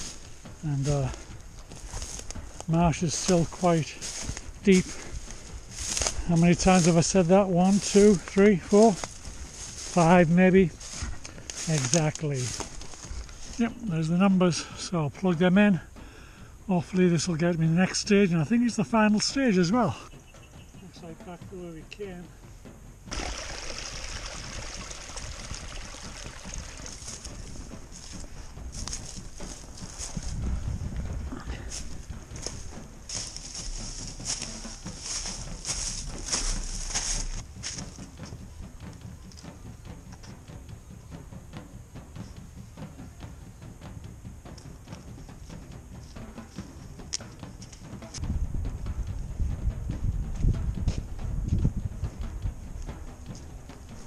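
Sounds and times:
footsteps on wooden footbridge: 0:00.0 - 0:13.9, 0:22.5 - 0:54.0
footsteps in dry leaves: 0:00.0 - 0:14.8, 0:23.1 - 0:40.5
low microphone rumbles: 0:22.4 - 0:54.0.

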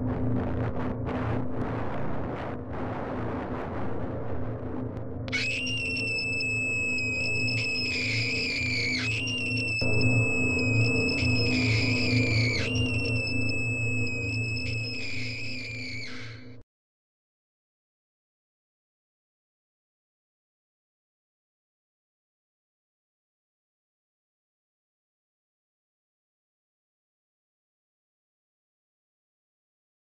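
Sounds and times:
low drone: 0:00.0 - 0:16.5
high scream-like electronic tone: 0:05.3 - 0:16.6.

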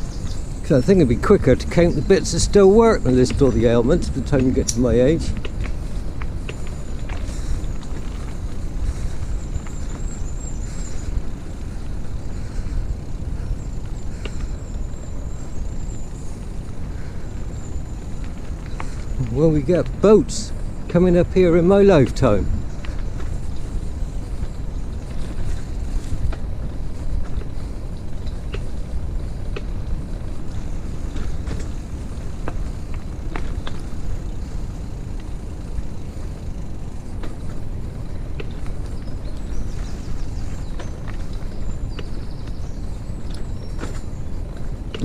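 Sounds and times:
wheels rolling over dirt path: 0:00.0 - 0:45.0.

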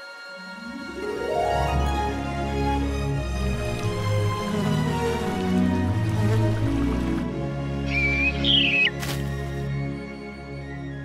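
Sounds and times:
orchestral film music: 0:00.0 - 0:11.0
cartoon bird whistled call: 0:07.9 - 0:09.0.

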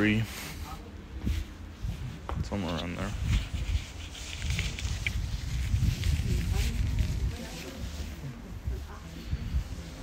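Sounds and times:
wind buffeting microphone: 0:01.2 - 0:10.0.

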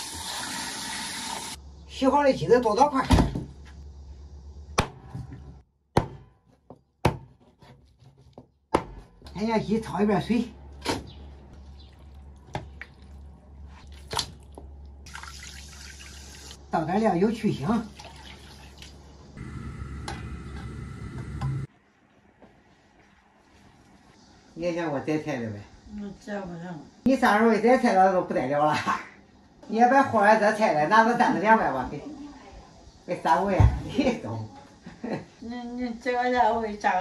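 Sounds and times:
cleaver chopping on wooden board: 0:05.9 - 0:07.6, 0:08.7 - 0:09.1.

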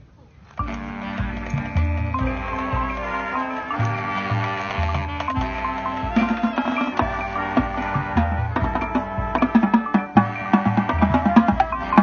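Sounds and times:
low sustained bass notes: 0:00.6 - 0:06.4
drums: 0:00.6 - 0:12.0
mallet percussion: 0:00.6 - 0:12.0.

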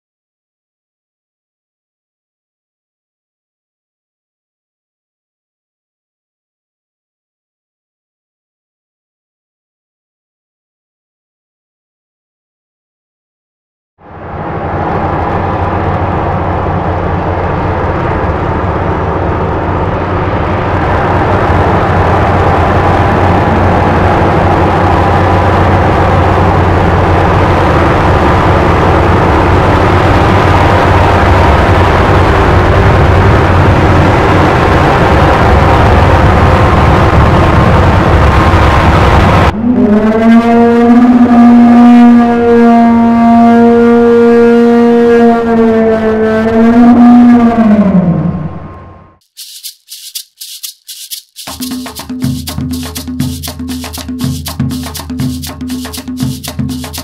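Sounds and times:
loud horn-like tone: 0:39.6 - 0:47.5.

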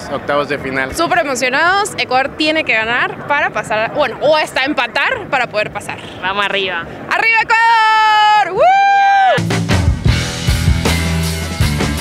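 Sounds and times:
woman yelling cheerfully: 0:07.1 - 0:09.4
rock music with drums: 0:09.4 - 0:12.0.

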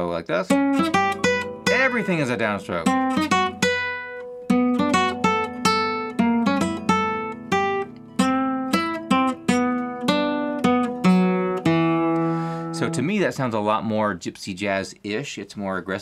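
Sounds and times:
classical guitar melody: 0:00.5 - 0:13.0.

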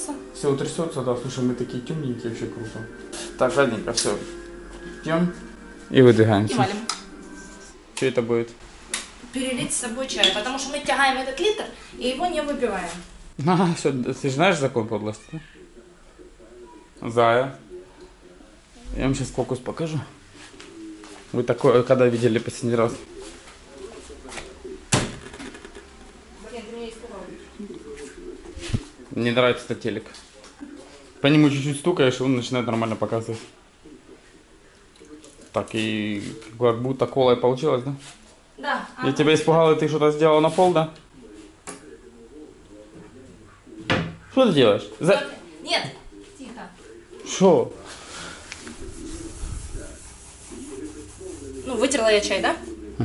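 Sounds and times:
faint television sound: 0:00.0 - 0:53.0.

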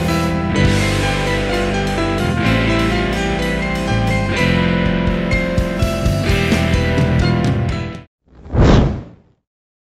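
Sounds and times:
whoosh sound effect: 0:08.3 - 0:09.3.

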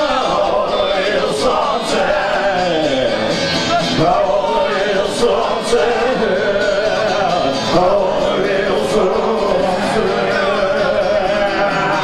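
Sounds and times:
man singing into microphone: 0:00.0 - 0:12.0
strummed electric guitar: 0:00.0 - 0:12.0.

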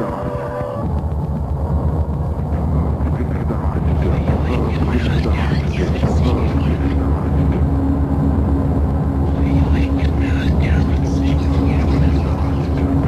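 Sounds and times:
voice-like wavering sounds: 0:00.0 - 0:01.0, 0:02.4 - 0:07.8, 0:09.3 - 0:13.0
low rumbling drone: 0:00.0 - 0:13.0
steady held tone: 0:00.0 - 0:13.0.

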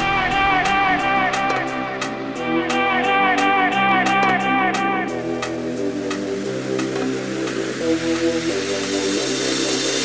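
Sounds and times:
soft instrumental chords: 0:00.0 - 0:10.0.

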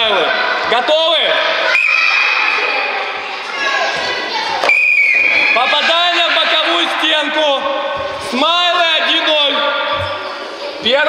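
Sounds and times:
children chattering and shouting: 0:00.0 - 0:11.0
sports whistle blast: 0:01.7 - 0:02.1, 0:04.6 - 0:05.6.

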